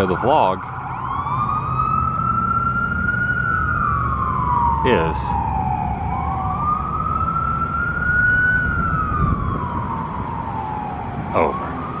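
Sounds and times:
low traffic rumble: 0.0 - 12.0
siren wailing: 0.0 - 12.0.

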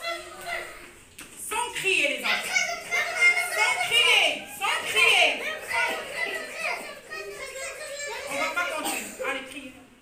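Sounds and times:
children talking: 0.0 - 9.9.

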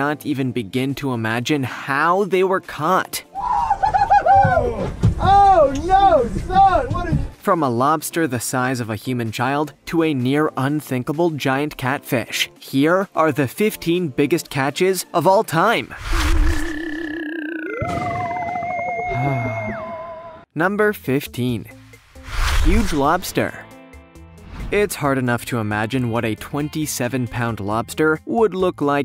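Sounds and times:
people whooping and crying out: 3.3 - 5.8, 17.6 - 20.4
warbling electronic tone: 16.1 - 20.3
electronic tone gliding downward: 16.2 - 20.4
high tone dropping in pitch: 16.2 - 20.4.

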